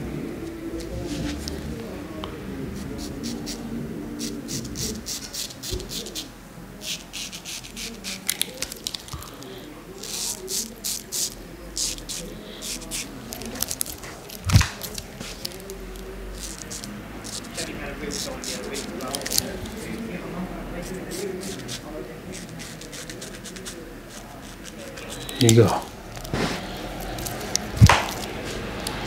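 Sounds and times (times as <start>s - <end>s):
razor scraping stubble: 2.8s - 29.0s.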